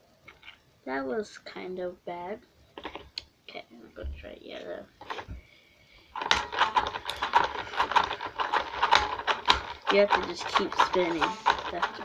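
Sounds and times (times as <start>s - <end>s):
faint steady whine: 0.0s - 12.0s
plastic clicking and rattling: 6.2s - 12.0s.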